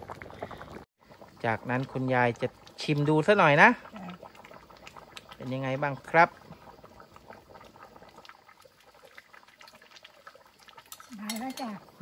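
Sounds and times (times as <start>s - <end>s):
curry bubbling in a wok: 0.0s - 12.0s.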